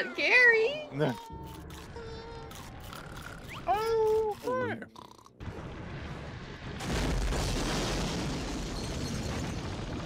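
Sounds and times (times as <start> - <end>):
glass shattering crash: 7.3 - 10.0.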